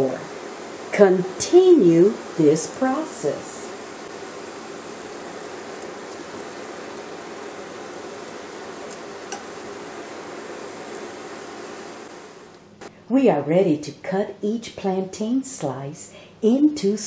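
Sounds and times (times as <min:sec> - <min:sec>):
plantain slices sizzling in pan: 0:00.0 - 0:12.5.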